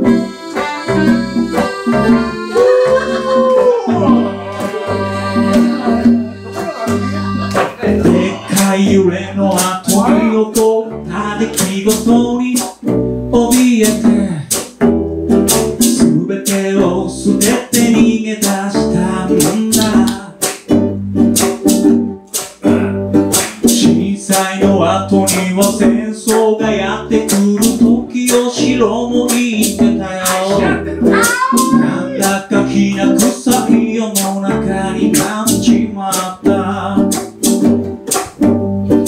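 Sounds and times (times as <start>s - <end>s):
drum kit beat: 0.0s - 39.0s
strummed acoustic strings: 0.0s - 39.0s
man singing: 2.5s - 4.9s, 7.8s - 14.6s, 15.8s - 20.5s, 22.6s - 37.3s.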